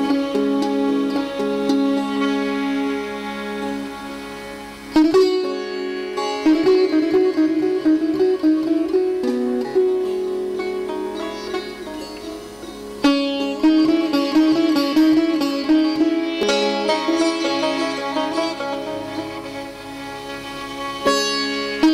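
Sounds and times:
sitar plucked notes with pitch bends: 0.0s - 21.9s.

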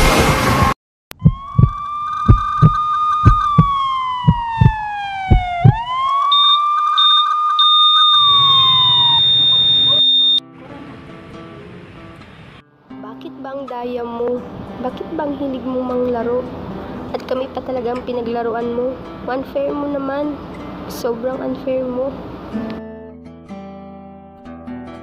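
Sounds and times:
loud burst of noise: 0.0s - 3.6s, 8.2s - 10.0s
sharp thumps: 0.0s - 6.0s
emergency vehicle siren wailing: 1.2s - 10.4s.

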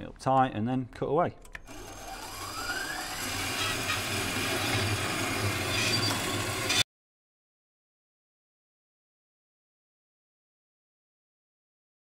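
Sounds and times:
bandsaw cutting metal tube: 1.7s - 6.8s.

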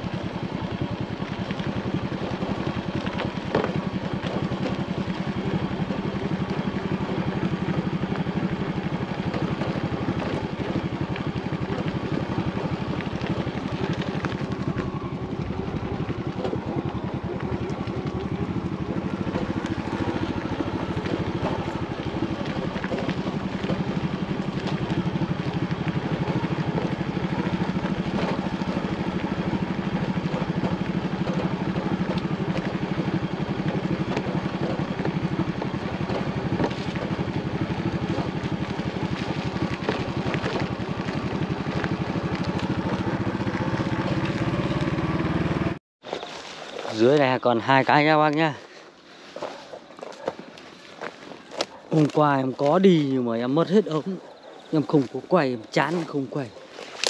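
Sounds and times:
motorcycle engine running: 0.0s - 45.8s, 49.3s - 57.0s.

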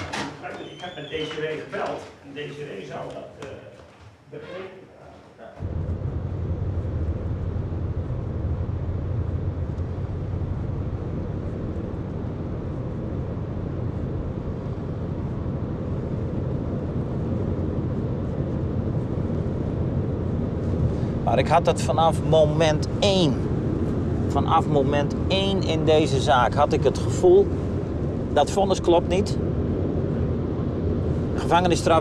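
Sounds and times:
low hum: 5.6s - 32.0s.

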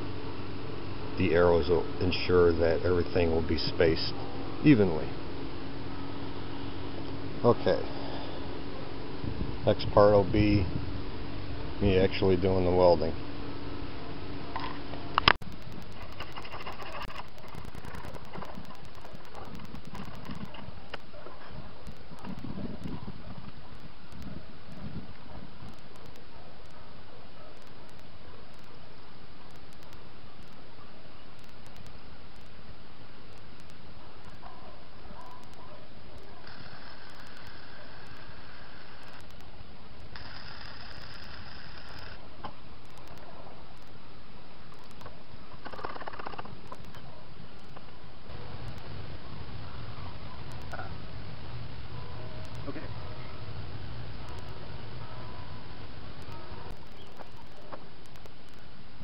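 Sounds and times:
steady hiss: 0.0s - 59.0s
arc welding hiss: 36.3s - 42.2s.

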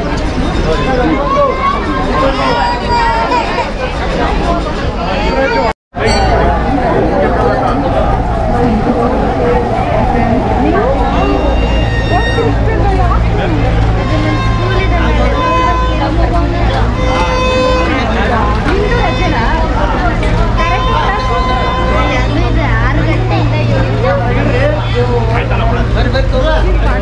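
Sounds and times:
crowd babble: 0.0s - 27.0s.

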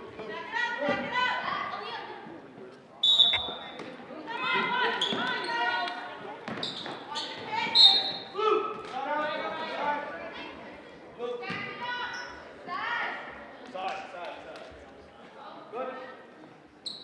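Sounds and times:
referee's whistle blast: 3.0s - 3.7s.

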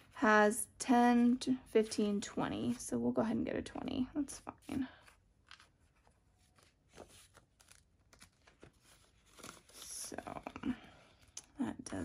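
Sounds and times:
paper and plastic rustling: 4.6s - 11.6s.

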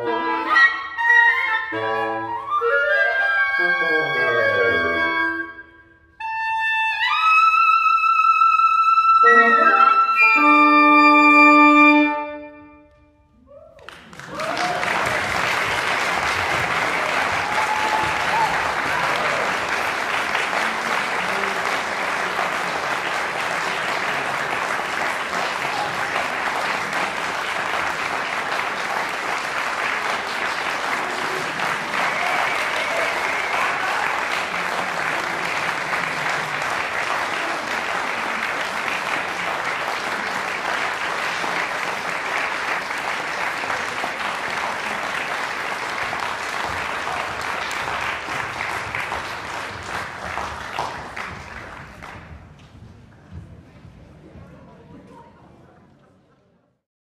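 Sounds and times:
audience applauding: 13.5s - 52.7s.

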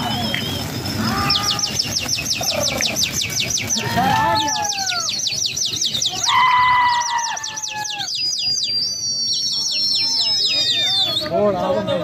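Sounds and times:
people whistling shrilly: 0.0s - 11.4s.

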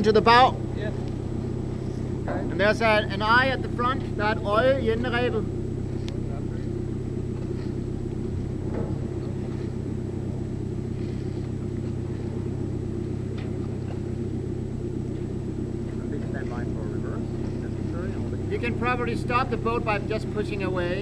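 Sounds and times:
submarine engine droning: 0.0s - 21.0s.

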